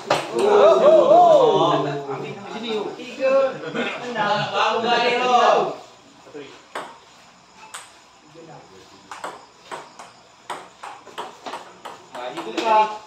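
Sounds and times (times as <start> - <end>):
ping-pong ball clicking: 7.6 - 8.0, 9.1 - 12.7.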